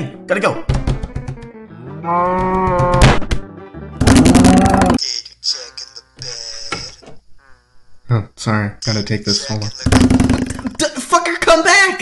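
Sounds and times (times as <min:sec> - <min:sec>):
cow mooing: 0:02.0 - 0:03.0, 0:04.3 - 0:05.0.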